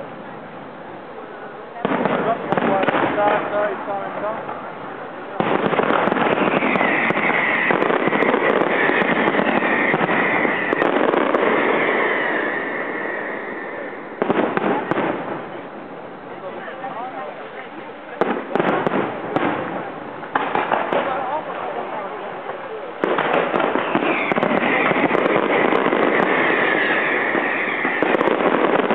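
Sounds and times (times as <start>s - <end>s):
fireworks crackling barrage: 0.0s - 28.9s
fireworks bangs: 1.7s - 28.9s.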